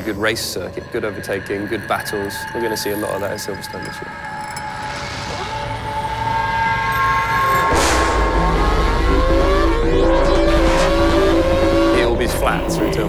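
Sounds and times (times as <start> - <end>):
racing car engine accelerating: 8.3 - 12.7.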